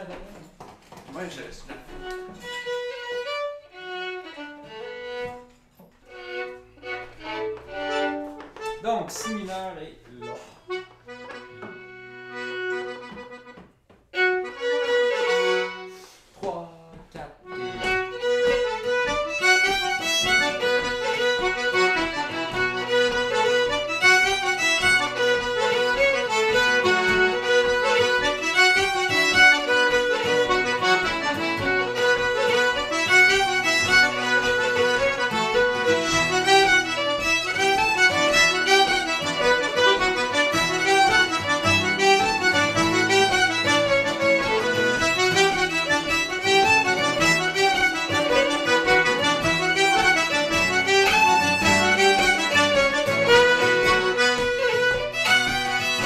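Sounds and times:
button accordion: 0:00.0 - 0:16.2, 0:17.4 - 0:56.0
fiddle: 0:00.0 - 0:16.2, 0:17.4 - 0:56.0
acoustic guitar: 0:17.4 - 0:56.0.

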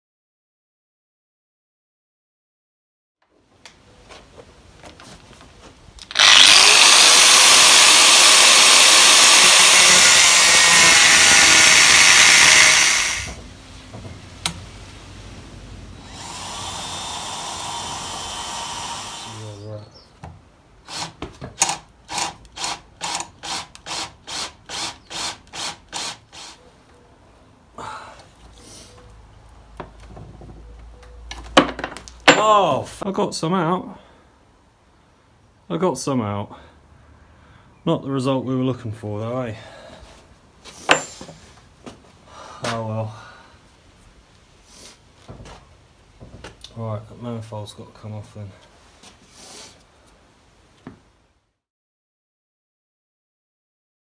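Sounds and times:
cordless drill drilling into metal: 0:06.0 - 0:13.4, 0:16.0 - 0:19.6, 0:20.9 - 0:26.6.

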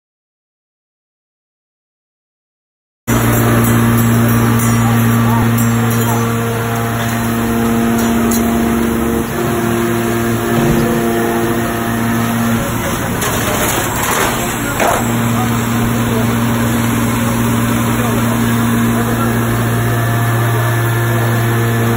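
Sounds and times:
machinery hum: 0:03.1 - 0:21.9.

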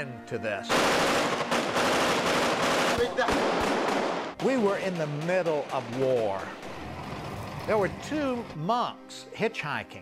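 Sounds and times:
automatic gunfire: 0:00.7 - 0:06.7.

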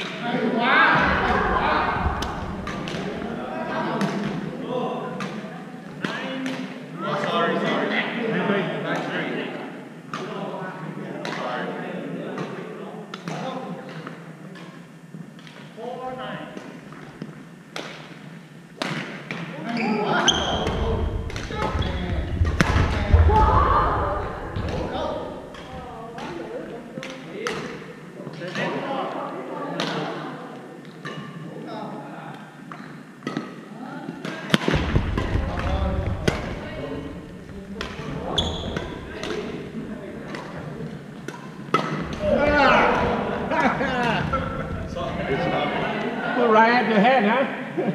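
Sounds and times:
voices echoing in hall: 0:00.0 - 0:47.9
racket striking shuttlecock: 0:34.2 - 0:35.6, 0:37.8 - 0:39.6, 0:41.2 - 0:42.2.

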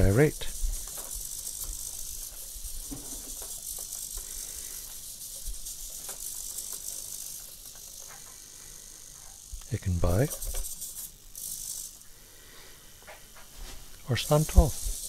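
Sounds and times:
servos whirring: 0:00.0 - 0:13.3, 0:13.9 - 0:15.0.

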